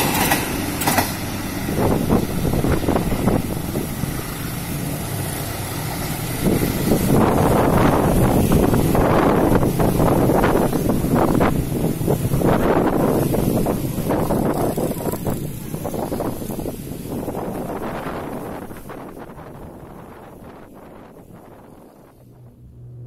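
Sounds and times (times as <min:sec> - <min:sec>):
train wheels clattering on rails: 0:00.0 - 0:20.2
wind buffeting microphone: 0:00.0 - 0:23.0.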